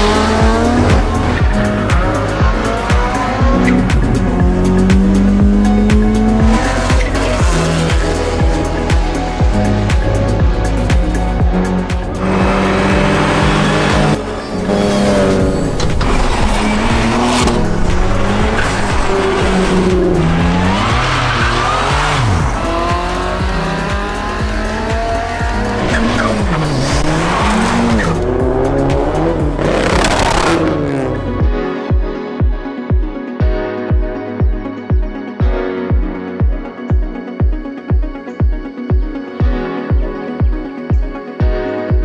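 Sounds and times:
music with steady beat: 0.0 - 14.4, 15.0 - 42.0
car engines revving: 0.0 - 31.4.

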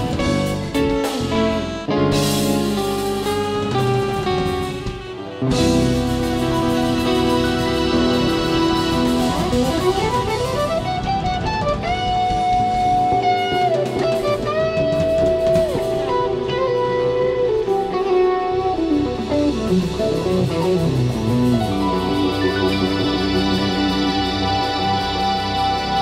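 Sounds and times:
bass: 0.0 - 26.0
drums: 0.0 - 26.0
electric guitar runs: 0.0 - 26.0
keyboards: 0.0 - 26.0.

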